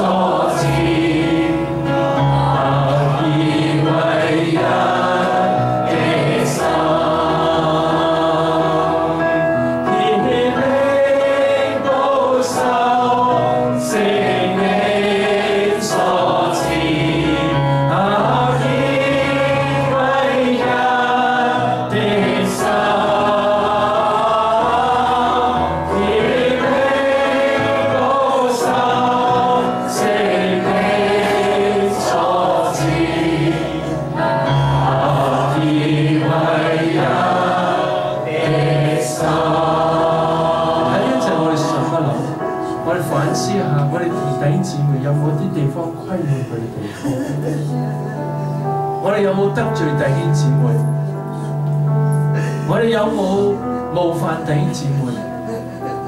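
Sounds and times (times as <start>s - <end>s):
voices singing along: 0.0s - 44.3s
instrumental accompaniment: 0.0s - 56.0s.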